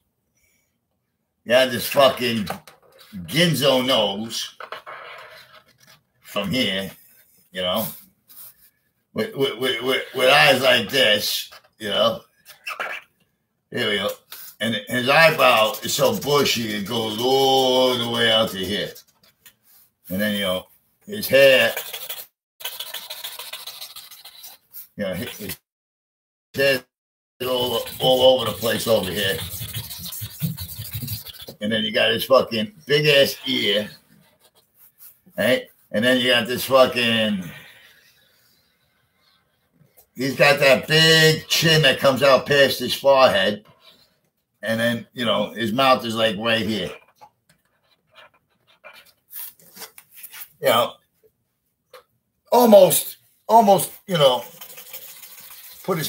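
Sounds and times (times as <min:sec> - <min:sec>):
marker scratching on cardboard: 0:21.5 - 0:25.6, 0:27.4 - 0:31.7.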